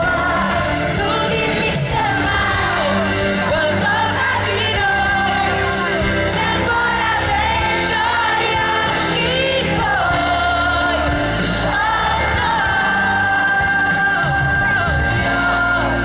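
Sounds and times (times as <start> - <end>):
woman singing pop ballad with band: 0.0 - 16.0.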